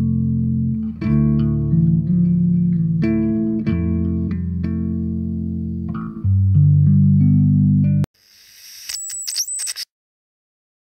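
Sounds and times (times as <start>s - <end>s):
tv static hiss: 8.2s - 9.8s
glitchy crackles: 8.2s - 9.9s
thin high whine: 8.2s - 9.9s.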